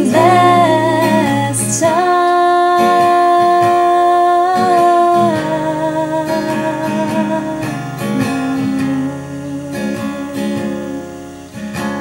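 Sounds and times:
people singing in harmony: 0.0 - 11.2.

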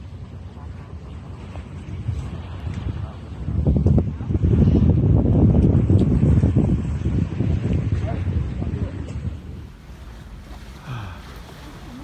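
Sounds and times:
low rush of wind and sea: 0.0 - 12.0
wind buffeting microphone: 0.0 - 12.0.

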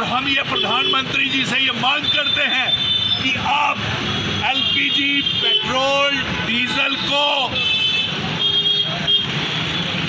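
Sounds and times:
man speaking: 0.0 - 7.6
street traffic noise: 0.0 - 10.0.

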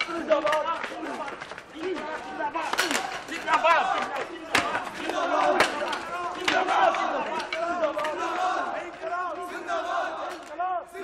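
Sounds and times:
crowd shouting: 0.0 - 11.0.

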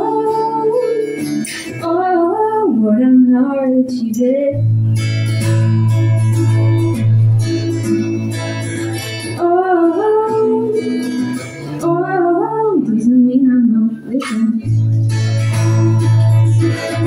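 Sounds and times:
acoustic guitar strumming: 0.0 - 3.3, 4.5 - 17.0
woman singing: 0.0 - 4.7, 9.2 - 17.0.

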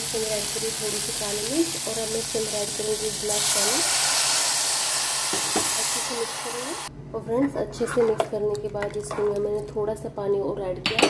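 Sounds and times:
hiss and sizzle of steam: 0.0 - 6.9.

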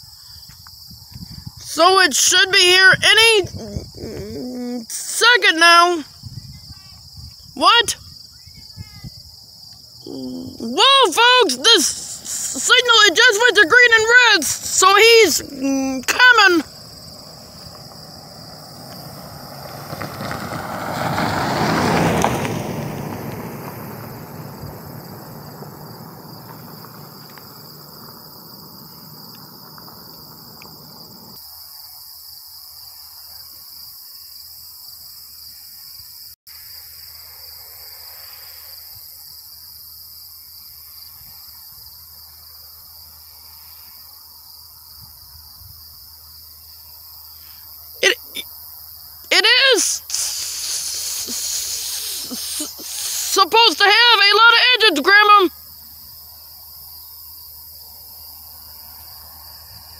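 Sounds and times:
insects buzzing: 0.0 - 59.9.

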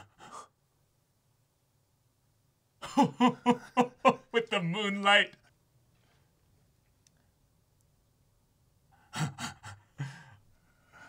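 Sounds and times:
men chuckling: 2.8 - 4.7.

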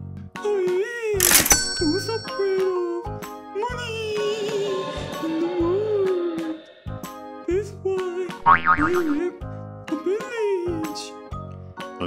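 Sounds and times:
playful children's music: 7.5 - 11.2
cartoon boing sound effect: 8.4 - 9.2.

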